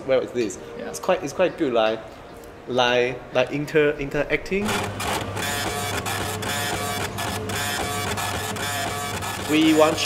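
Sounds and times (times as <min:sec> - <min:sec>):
ticket printer whirring: 0:04.6 - 0:10.0.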